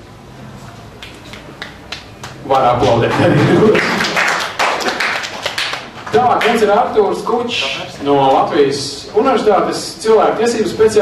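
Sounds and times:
faint room hum: 0.0s - 11.0s
audience hand claps: 1.0s - 6.7s.

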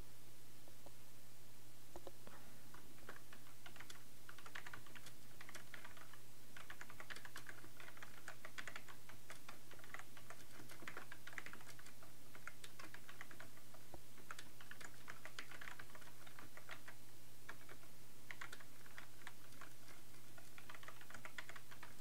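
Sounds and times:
computer keyboard typing: 2.7s - 22.0s.

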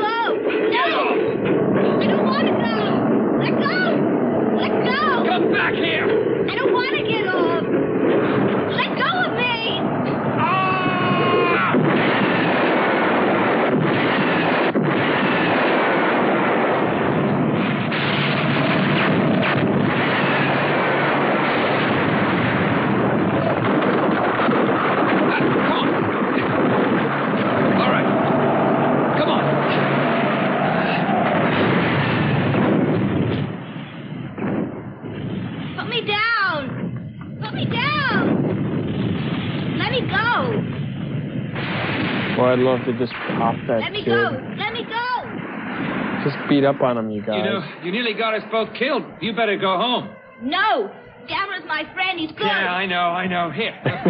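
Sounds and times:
explosions: 0.0s - 54.0s
crashing debris: 11.2s - 46.6s.

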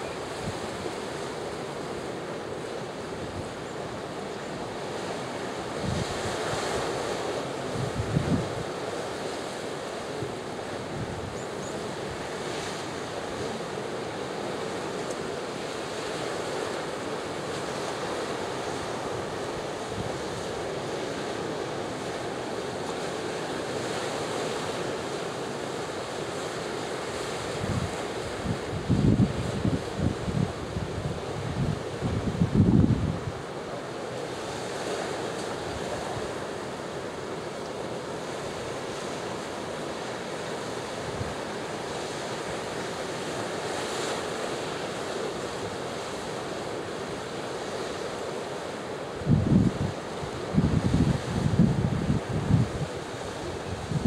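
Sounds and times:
wind buffeting microphone: 27.6s - 33.3s, 49.3s - 54.0s.

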